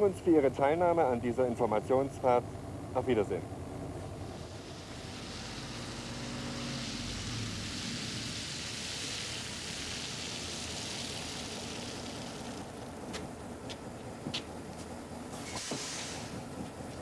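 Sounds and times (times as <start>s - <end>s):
hiss of tyres and air: 4.2s - 12.7s, 15.3s - 16.6s.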